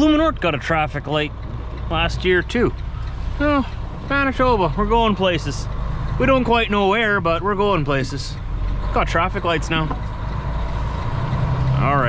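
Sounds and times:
truck diesel engine running: 0:00.0 - 0:12.0.

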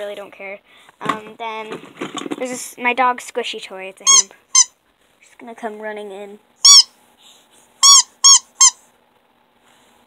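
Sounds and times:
dog toy squeaking: 0:04.0 - 0:04.7, 0:06.6 - 0:06.9, 0:07.8 - 0:08.8.

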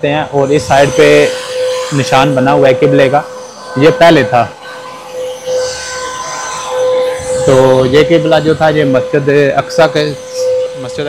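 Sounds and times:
steady mid-pitched hum: 0:00.0 - 0:11.0.

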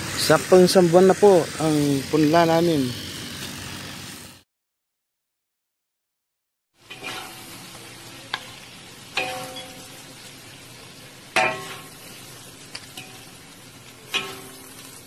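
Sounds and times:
shrimp sizzling in a wok: 0:00.0 - 0:04.4, 0:06.8 - 0:15.0
metal spatula knocking pan: 0:09.2 - 0:09.8, 0:11.4 - 0:11.9, 0:14.1 - 0:14.6.

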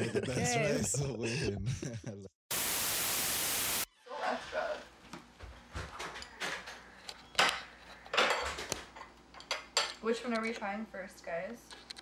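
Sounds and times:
static hiss burst: 0:02.5 - 0:03.9.

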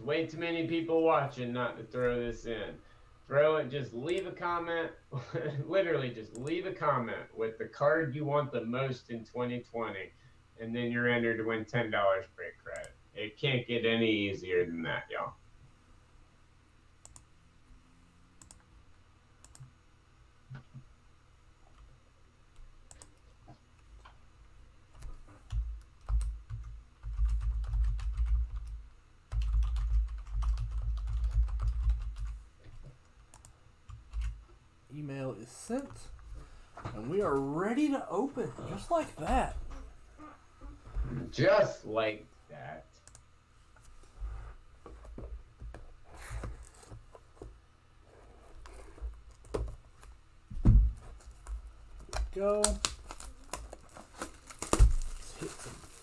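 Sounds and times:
typing on computer keyboard: 0:25.0 - 0:32.4.

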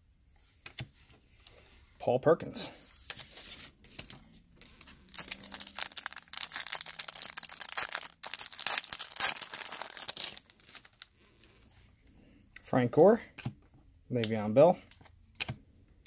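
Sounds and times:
foil wrapper tearing and crinkling: 0:05.1 - 0:11.1.

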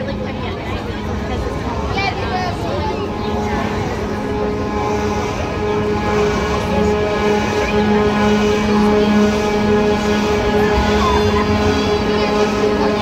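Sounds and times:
music: 0:00.0 - 0:13.0
ride drive mechanical hum: 0:00.0 - 0:13.0.

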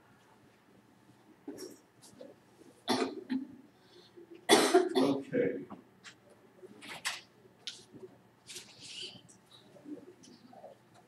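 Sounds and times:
person coughing: 0:02.9 - 0:03.4, 0:04.5 - 0:05.2.

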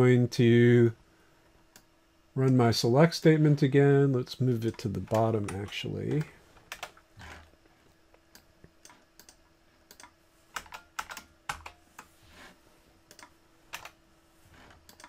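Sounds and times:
faint steady hum: 0:00.0 - 0:15.0
computer keyboard keystrokes: 0:09.2 - 0:12.1, 0:13.1 - 0:14.0.

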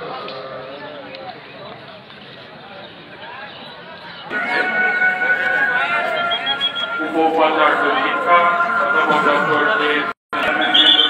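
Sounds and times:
crowd noise: 0:00.0 - 0:11.0
voices singing slow song: 0:04.3 - 0:11.0.

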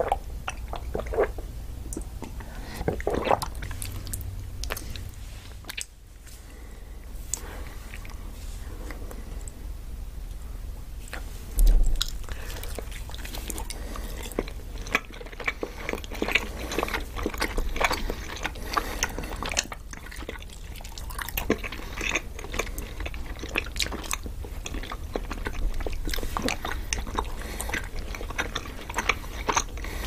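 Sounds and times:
people biting and chewing: 0:11.8 - 0:30.0.

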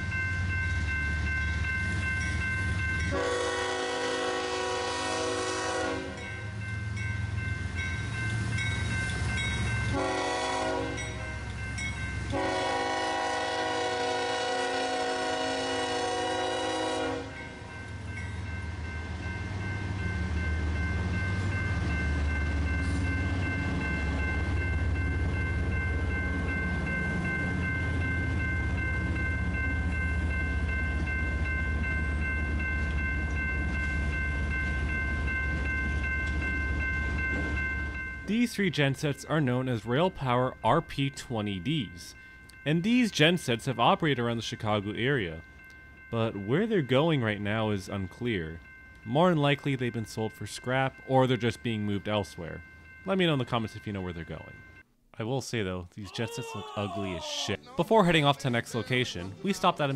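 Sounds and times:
train horn blasts: 0:03.1 - 0:06.3, 0:09.9 - 0:11.3, 0:12.3 - 0:17.5.

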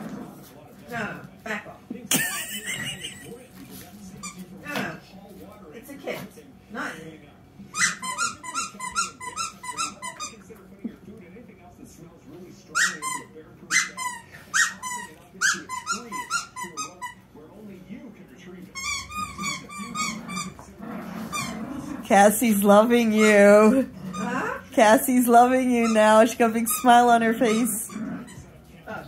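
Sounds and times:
squeaky dog toy squeaking: 0:07.7 - 0:10.4, 0:12.7 - 0:17.2, 0:18.7 - 0:20.6, 0:25.7 - 0:28.5.

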